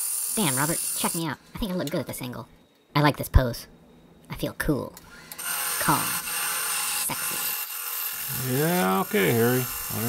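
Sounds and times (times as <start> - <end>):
wood lathe motor whine: 0.0 - 1.3, 5.1 - 10.0.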